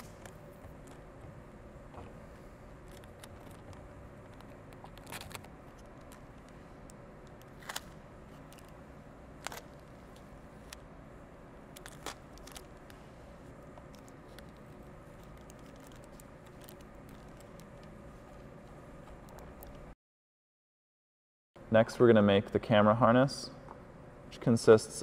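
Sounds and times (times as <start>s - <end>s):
low background hum: 0.0s - 20.0s, 21.6s - 25.0s.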